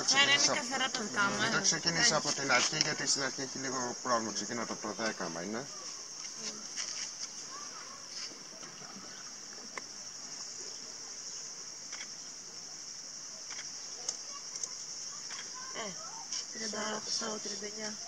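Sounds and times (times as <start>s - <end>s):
faint voices: 0.0s - 11.3s
cicada chorus drone: 0.0s - 18.0s.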